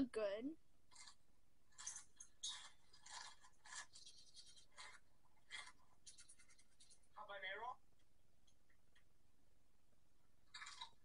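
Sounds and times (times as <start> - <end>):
crunching and chewing peppers: 0.9 - 7.0, 10.5 - 11.0.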